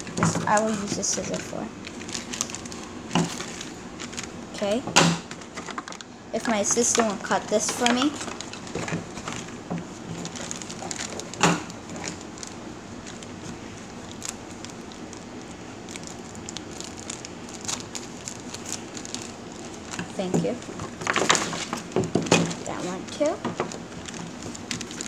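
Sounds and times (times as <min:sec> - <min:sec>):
plastic crinkling: 0:00.0 - 0:25.0.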